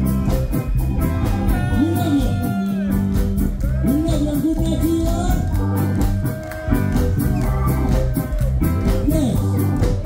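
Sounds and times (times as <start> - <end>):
live ska band playing: 0.0 - 10.0.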